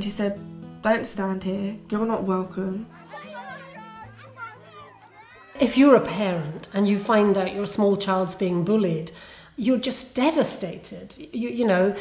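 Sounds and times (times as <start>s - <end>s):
children chattering and calling out: 2.8s - 7.7s.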